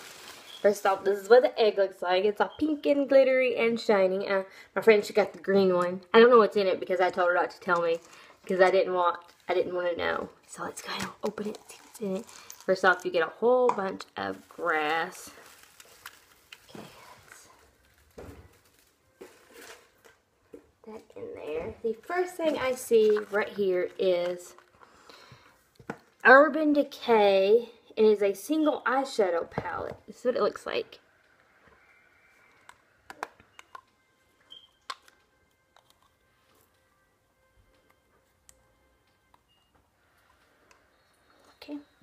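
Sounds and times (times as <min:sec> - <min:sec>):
rustling of shredded paper grass: 0:00.0 - 0:01.1.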